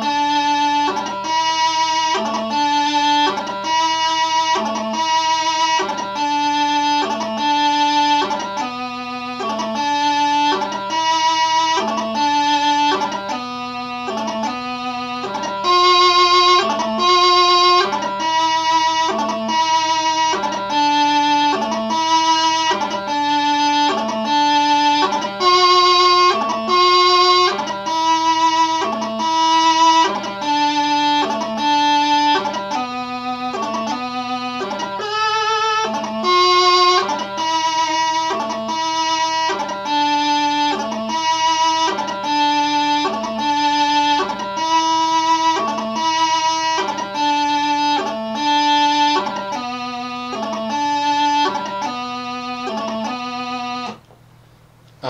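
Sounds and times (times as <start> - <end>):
bagpipe practice chanter melody: 0.0 - 54.1.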